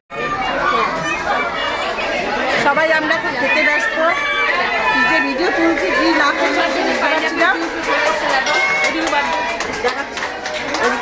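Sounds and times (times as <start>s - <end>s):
indistinct chatter of voices: 0.1s - 11.0s.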